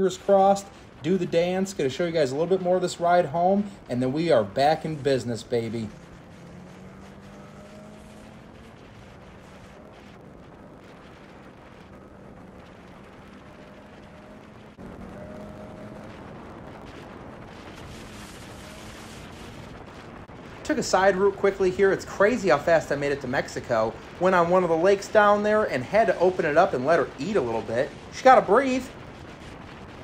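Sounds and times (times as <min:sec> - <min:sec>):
snowmobile engine drone: 0:00.0 - 0:30.0
wind noise hiss: 0:00.0 - 0:30.0.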